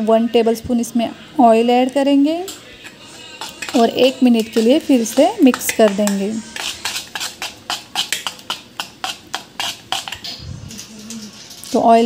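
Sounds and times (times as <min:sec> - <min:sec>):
spoon clinking against metal pot: 0:02.5 - 0:10.4
spoon stirring thick batter: 0:02.5 - 0:12.0.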